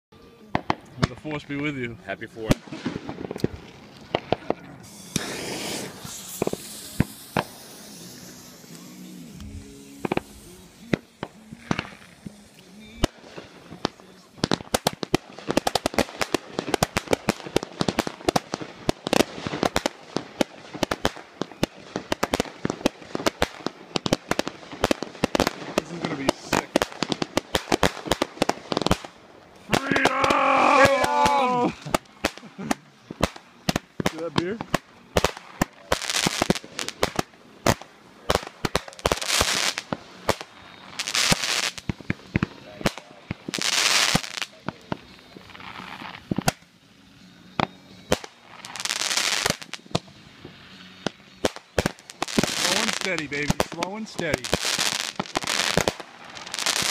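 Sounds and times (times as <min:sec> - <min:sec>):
fireworks bangs and crackling: 0:00.2 - 0:56.9.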